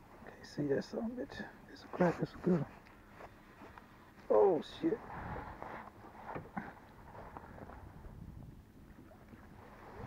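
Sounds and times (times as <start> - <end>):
boat engine low rumble: 0.0 - 10.0
wind on microphone: 5.0 - 5.7, 6.4 - 10.0.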